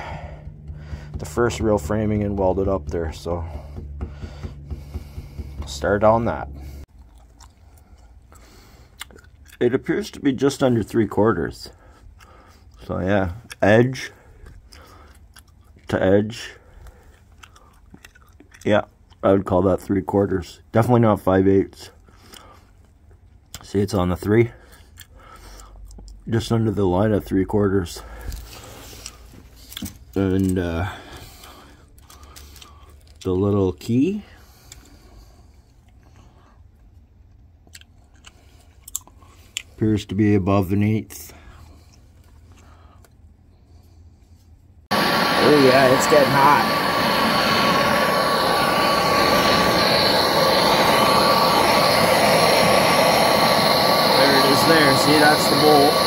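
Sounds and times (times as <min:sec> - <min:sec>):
gas torch hissing: 0:44.9 - 0:56.0.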